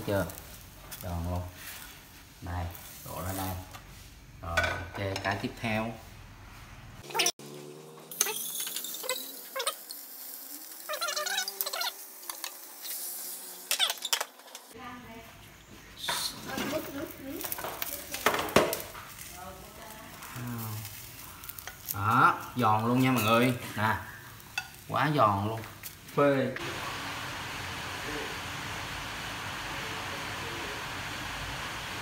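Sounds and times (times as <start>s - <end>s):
batter sizzling in frying pan: 0.0s - 5.8s, 8.1s - 14.8s, 16.0s - 32.0s
clinks and knocks of pans: 4.5s - 5.4s.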